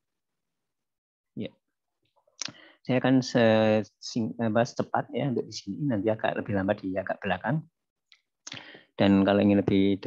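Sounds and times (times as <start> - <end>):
man speaking: 2.9 - 7.7.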